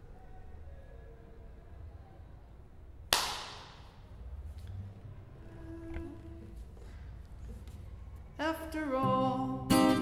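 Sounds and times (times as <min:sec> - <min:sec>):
sharp crack: 0:03.1 - 0:04.0.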